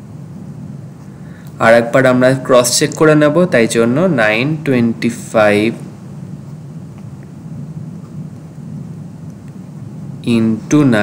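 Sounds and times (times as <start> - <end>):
low rumbling room tone: 0.0 - 11.0.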